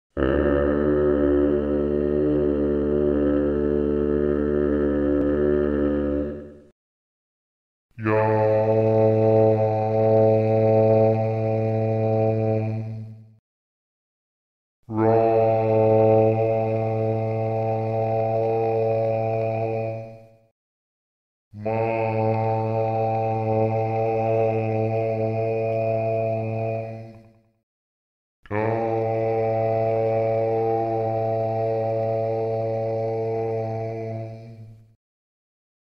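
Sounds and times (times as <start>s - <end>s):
low voice chanting: 0.1s - 6.7s, 8.0s - 13.4s, 14.9s - 20.5s, 21.6s - 27.4s, 28.4s - 35.0s.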